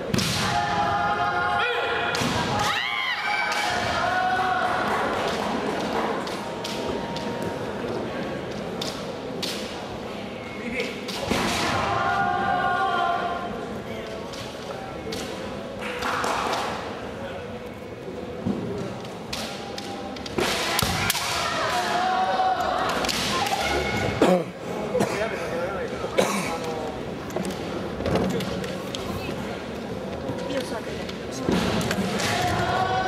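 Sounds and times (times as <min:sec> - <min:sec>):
fencers shouting: 0:20.6 - 0:24.2.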